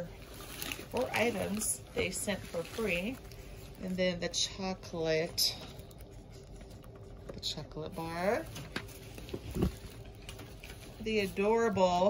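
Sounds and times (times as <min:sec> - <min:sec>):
candy boxes being handled: 0:00.0 - 0:12.0.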